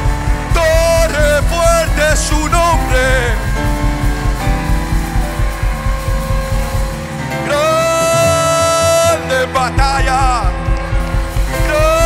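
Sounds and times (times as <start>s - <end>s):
bass and drum beat: 0.0s - 12.0s
sustained keyboard chords: 0.0s - 12.0s
person singing a long note: 5.4s - 9.6s.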